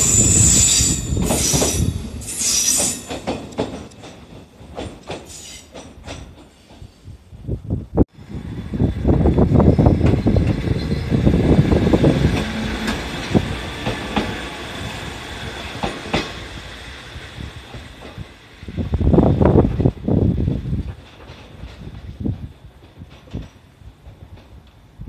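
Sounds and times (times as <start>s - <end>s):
railcar wheels clacking over joints: 0.0s - 7.6s, 9.2s - 25.0s
train rumble: 0.0s - 25.0s.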